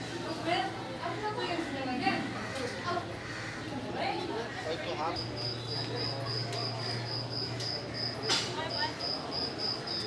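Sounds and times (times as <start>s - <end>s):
cricket chirping: 5.1s - 10.0s.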